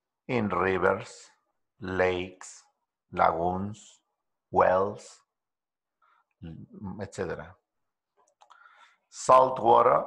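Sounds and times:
man speaking: 0.3 - 5.3, 6.4 - 7.6, 9.1 - 10.0.

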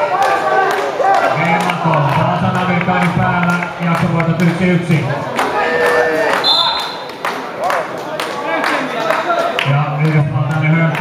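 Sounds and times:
short high whistle blast: 6.4 - 7.1.

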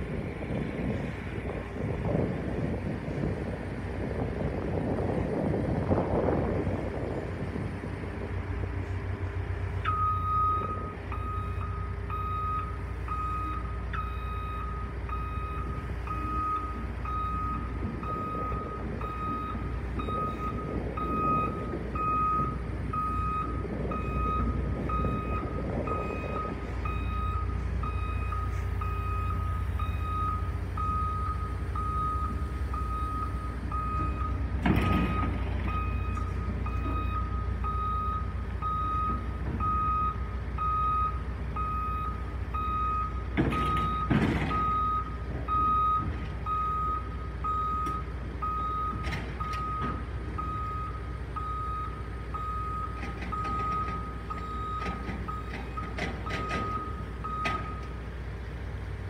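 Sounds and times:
excavator diesel engine running: 0.0 - 59.0
travel alarm beeping: 26.0 - 34.4.

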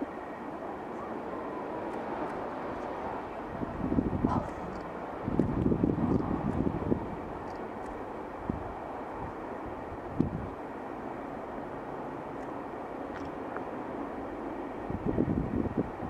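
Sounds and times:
steady rushing noise: 0.0 - 16.0
wind buffeting microphone: 0.0 - 16.0.

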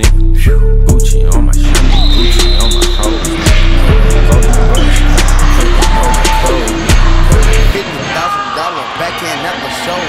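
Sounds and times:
voices talking over one another: 1.3 - 10.0.

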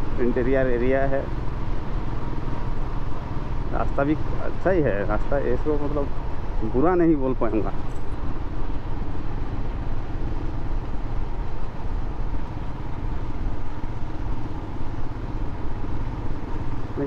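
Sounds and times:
motorcycle engine running: 0.0 - 17.0
wind and road noise: 0.0 - 17.0.

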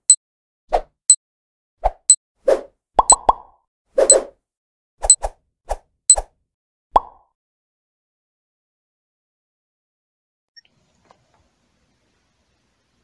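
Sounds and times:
cartoon pops and plops: 3.0 - 4.2, 7.0 - 7.3.

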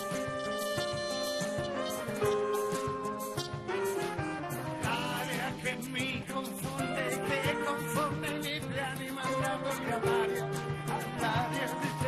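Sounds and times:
band playing instrumental pop: 0.0 - 12.0.

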